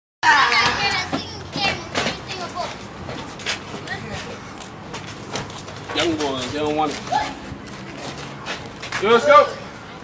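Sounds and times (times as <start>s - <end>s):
children shouting: 0.2s - 2.7s, 7.1s - 7.5s.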